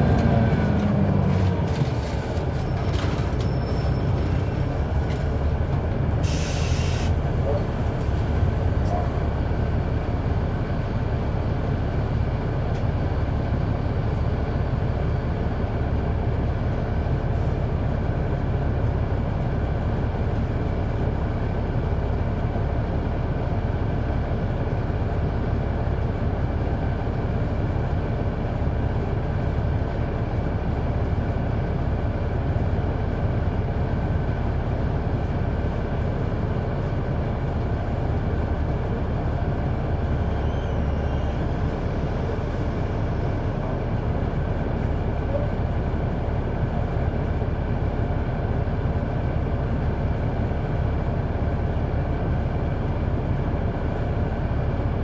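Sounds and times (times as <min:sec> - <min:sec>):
bus diesel engine droning: 0:00.0 - 0:55.0.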